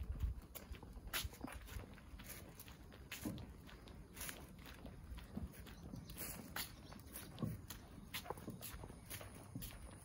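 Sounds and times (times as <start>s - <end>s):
footsteps on asphalt: 0.0s - 10.0s.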